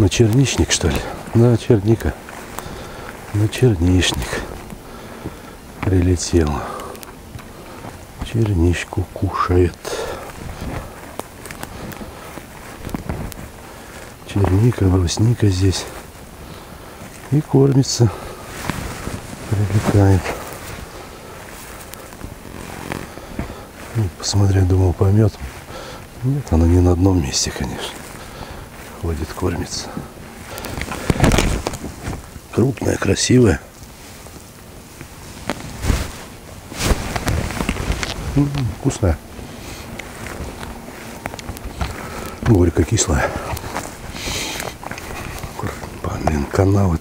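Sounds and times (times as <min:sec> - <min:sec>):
footsteps rustling through undergrowth: 0:00.0 - 0:47.0
camera handling noise: 0:30.5 - 0:32.3.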